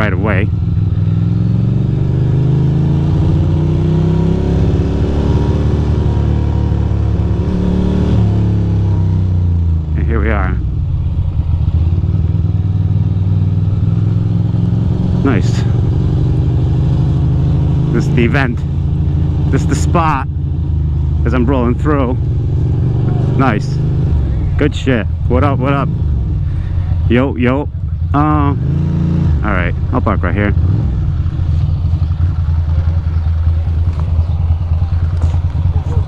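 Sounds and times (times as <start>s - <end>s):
motorcycle engine running: 0.0s - 36.0s.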